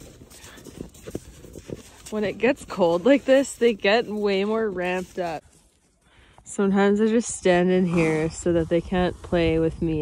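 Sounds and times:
hooves stepping in snow: 0:00.0 - 0:10.0.

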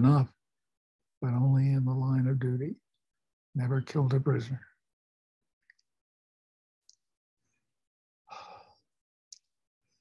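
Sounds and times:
man sighing: 0:08.3 - 0:08.7.

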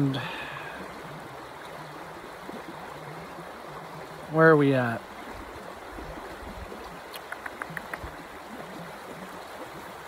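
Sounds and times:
creek water running: 0:00.0 - 0:10.0.

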